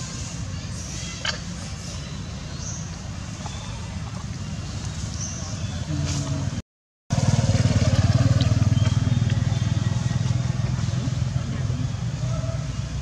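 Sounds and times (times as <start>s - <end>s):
motorcycle engine passing by: 5.9s - 12.1s.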